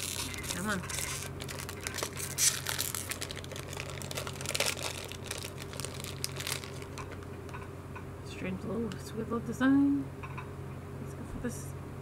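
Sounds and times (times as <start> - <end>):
wrapper crinkling and tearing: 0.0 - 7.4.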